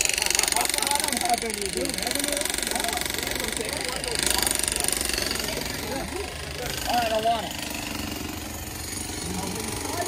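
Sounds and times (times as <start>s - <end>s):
small machine pulsing rattle: 0.0s - 10.0s.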